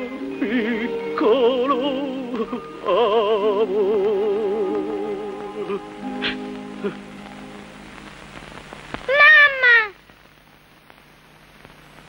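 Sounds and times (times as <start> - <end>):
film soundtrack hiss and crackle: 0.0 - 12.0.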